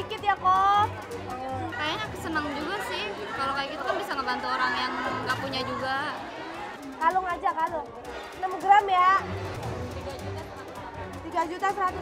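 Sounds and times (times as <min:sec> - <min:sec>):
background music: 0:00.0 - 0:12.0
people talking over one another: 0:00.0 - 0:12.0.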